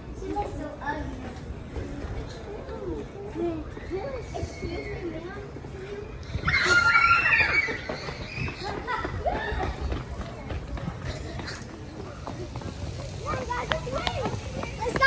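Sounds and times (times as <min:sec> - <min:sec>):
running footsteps on paving stones: 0:00.0 - 0:15.0
scattered voices: 0:00.0 - 0:15.0
children shrieking: 0:06.2 - 0:09.9.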